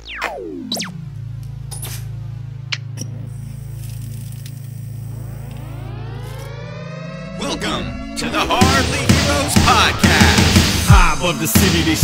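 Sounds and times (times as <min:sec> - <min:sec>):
low synthesizer drone: 0:00.0 - 0:12.0
rising sweep of tones: 0:04.7 - 0:11.6.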